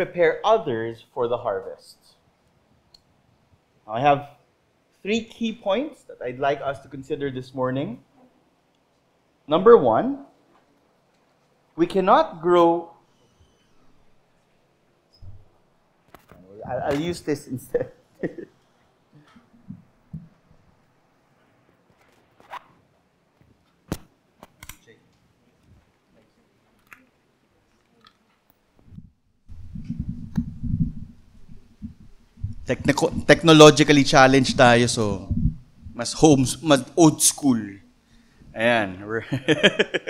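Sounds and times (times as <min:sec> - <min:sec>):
man speaking: 0:00.0 - 0:02.1, 0:03.9 - 0:04.4, 0:05.0 - 0:08.0, 0:11.8 - 0:13.0, 0:16.4 - 0:18.5, 0:32.7 - 0:35.3, 0:36.0 - 0:37.9, 0:38.5 - 0:40.0
microphone handling rustle: 0:28.8 - 0:33.4, 0:34.0 - 0:36.0.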